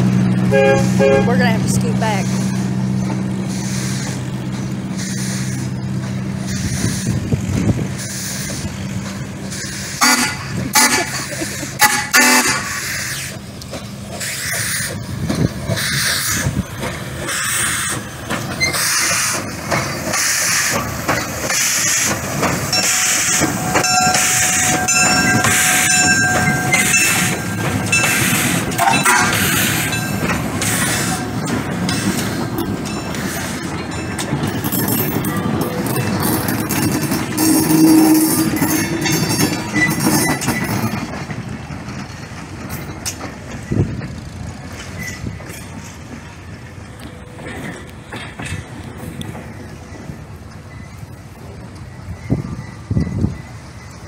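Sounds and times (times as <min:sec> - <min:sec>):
passenger cars rolling on rails: 0:00.0 - 0:54.0
steam locomotive rolling past: 0:00.0 - 0:54.0
held tone: 0:22.7 - 0:36.7.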